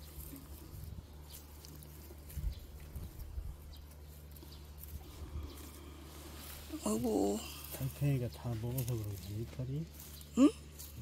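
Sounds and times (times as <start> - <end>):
leaves and soil rustling: 0.0 - 11.0.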